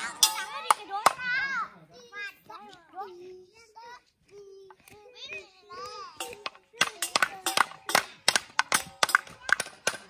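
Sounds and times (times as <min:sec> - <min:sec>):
children shouting at play: 0:00.0 - 0:10.0.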